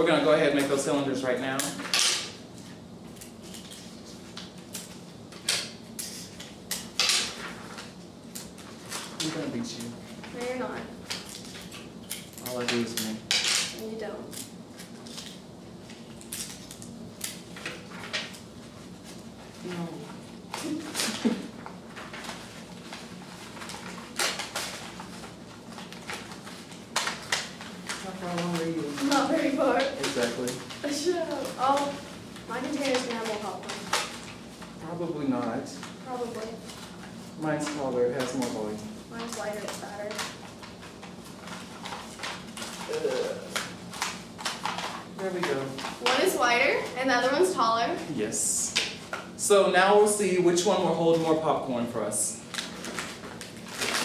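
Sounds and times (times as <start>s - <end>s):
paper rustling and crinkling: 17.5s - 34.8s, 35.4s - 47.0s, 52.4s - 54.0s.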